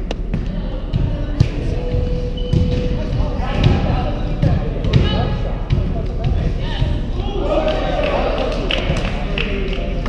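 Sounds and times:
players talking and calling: 0:00.0 - 0:10.0
volleyball thumps: 0:02.4 - 0:06.4.

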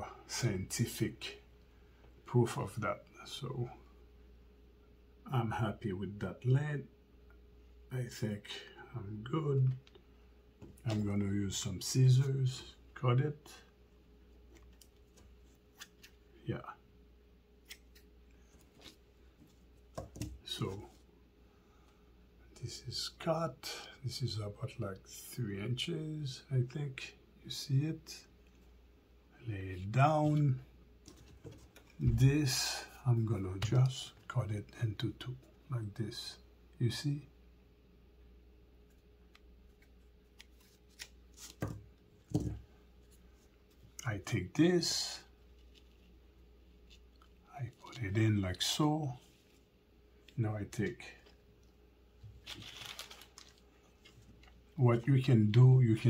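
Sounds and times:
hands rustling mesh: 0:52.3 - 0:54.7
short handling sounds: 0:52.3 - 0:54.8.

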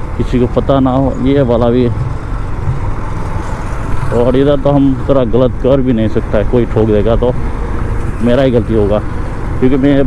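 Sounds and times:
motorcycle engine running: 0:00.0 - 0:10.0
road noise: 0:00.0 - 0:10.0.

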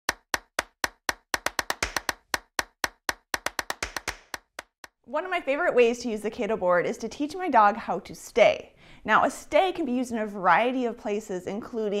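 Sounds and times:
percussive jingle of dry hits: 0:00.1 - 0:04.8.

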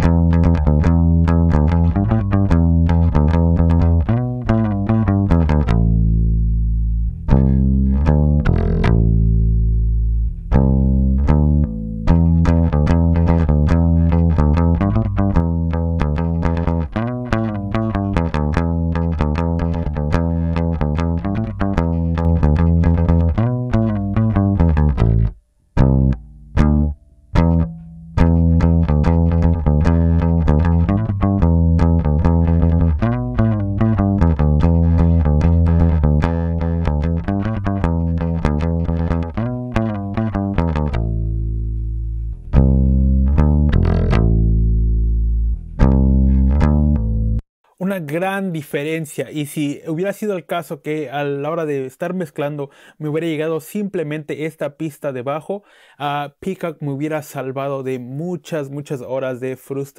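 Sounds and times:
plucked electric bass line: 0:00.0 - 0:47.4.

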